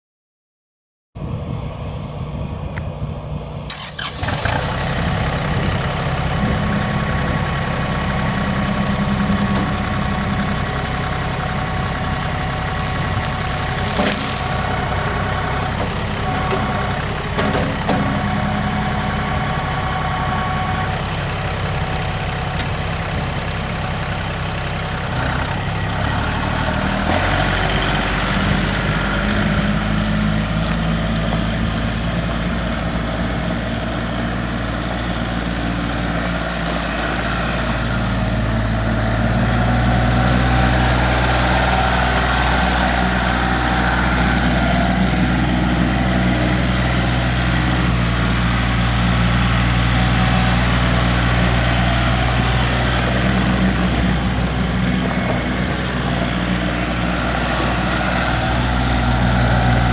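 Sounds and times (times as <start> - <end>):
diesel tractor engine running: 1.2 - 59.9.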